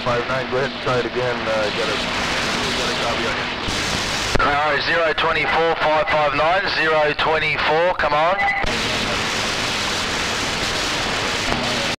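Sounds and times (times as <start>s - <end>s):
radio receiver hiss: 0.0s - 11.9s.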